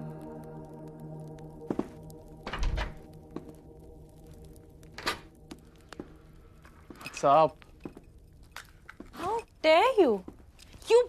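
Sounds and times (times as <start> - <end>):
soft background music: 0.0 - 10.5.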